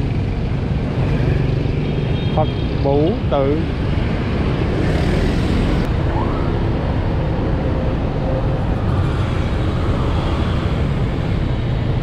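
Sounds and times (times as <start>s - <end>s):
car engines: 0.0s - 12.0s
city bus running: 0.0s - 12.0s
motorbike engines: 0.0s - 12.0s.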